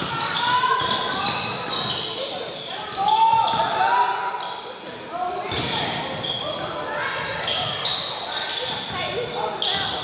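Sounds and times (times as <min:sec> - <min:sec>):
sneakers squeaking: 0:00.0 - 0:10.0
voices of players and spectators: 0:00.0 - 0:10.0.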